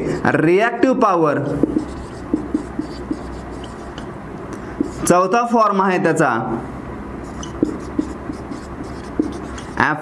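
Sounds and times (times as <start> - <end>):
marker writing on whiteboard: 1.5 - 4.2, 4.8 - 5.2, 7.2 - 10.0
marker tip tapping: 1.6 - 4.1, 7.4 - 9.8.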